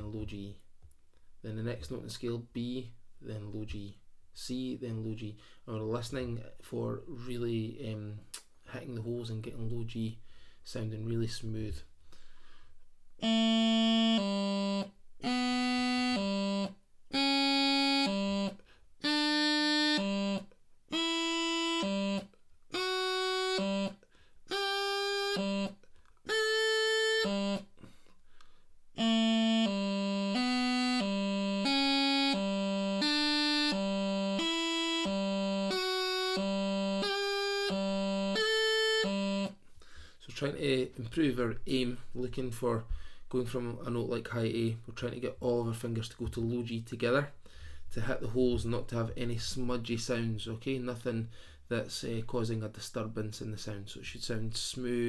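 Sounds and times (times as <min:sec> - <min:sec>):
bagpipe practice chanter notes: 0:13.2 - 0:28.0, 0:29.0 - 0:39.6.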